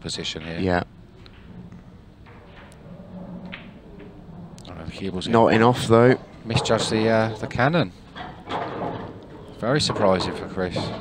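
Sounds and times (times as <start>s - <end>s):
pool balls clicking: 0.2s - 11.0s
cue striking ball: 3.4s - 4.2s.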